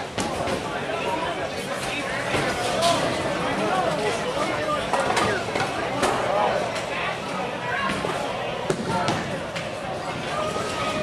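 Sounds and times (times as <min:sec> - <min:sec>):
many voices chattering: 0:00.0 - 0:11.0.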